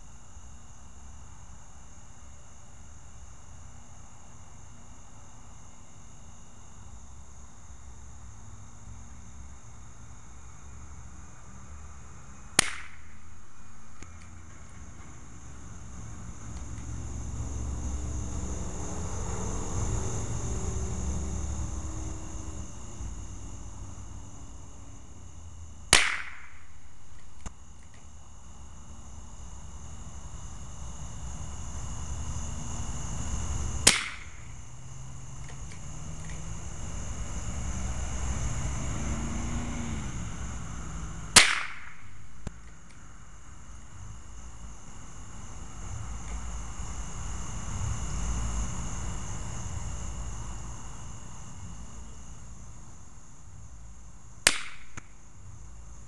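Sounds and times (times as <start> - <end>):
rifle shots: 12.6 - 13.1, 26.0 - 26.6, 33.9 - 34.4, 41.4 - 42.1, 54.5 - 55.0.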